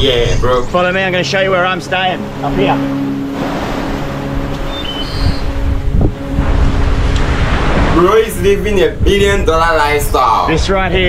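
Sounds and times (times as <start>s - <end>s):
surf washing on beach: 3.2s - 5.6s, 6.2s - 9.0s
wind rumbling on microphone: 3.4s - 11.0s.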